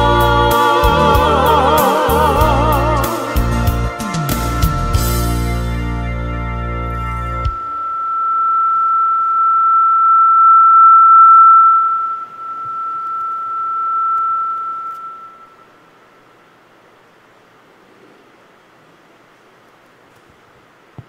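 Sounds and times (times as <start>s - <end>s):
high-pitched pure tone: 0.0s - 3.7s, 7.5s - 16.5s
music: 0.0s - 7.8s
faint room hiss: 6.8s - 21.0s.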